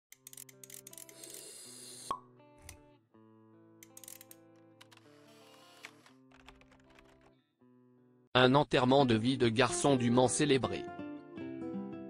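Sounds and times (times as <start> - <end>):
quiet background music: 0.1 - 12.0.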